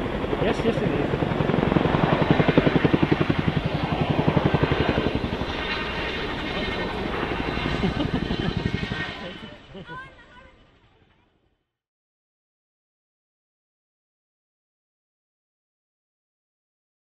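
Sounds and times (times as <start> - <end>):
helicopter rotor beat: 0.0 - 11.4.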